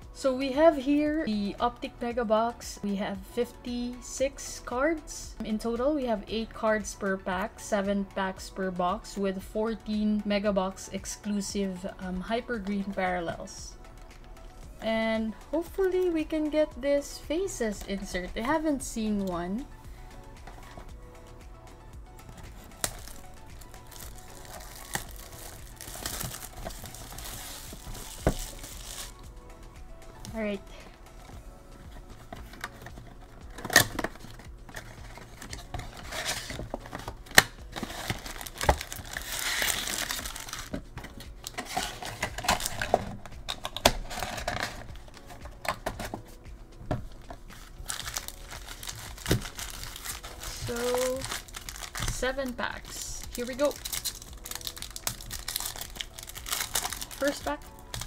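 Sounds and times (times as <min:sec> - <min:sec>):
soft background music: 0:00.0 - 0:58.0
plastic wrap crinkling: 0:22.4 - 0:29.2, 0:32.0 - 0:45.8, 0:47.5 - 0:58.0
box cutter slitting shrink wrap: 0:35.3 - 0:40.7, 0:53.8 - 0:57.2.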